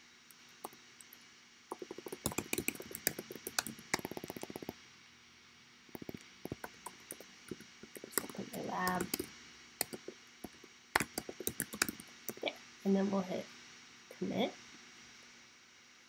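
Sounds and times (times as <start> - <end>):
computer keyboard typing: 0.3 - 4.7, 6.0 - 12.5.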